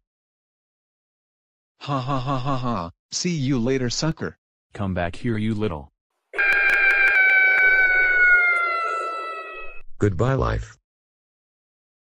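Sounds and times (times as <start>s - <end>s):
cartoon scream: 6.4s - 9.8s.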